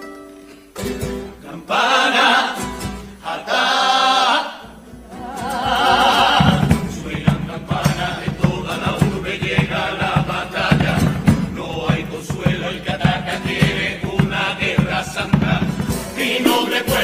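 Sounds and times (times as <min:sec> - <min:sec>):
guitars: 0:00.0 - 0:01.8, 0:02.4 - 0:03.5, 0:04.6 - 0:17.0
chorus chanting in unison: 0:01.4 - 0:17.0
steady drum beat: 0:04.7 - 0:17.0.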